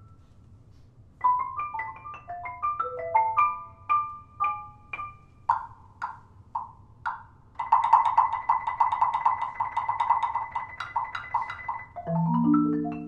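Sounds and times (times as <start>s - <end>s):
wood block strikes: 1.8s - 13.0s.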